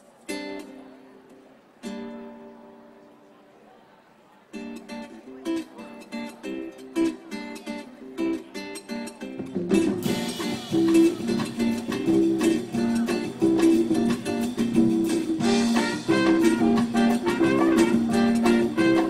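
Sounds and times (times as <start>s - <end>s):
acoustic guitar: 0.0s - 19.0s
band with bass and percussion: 9.4s - 19.0s.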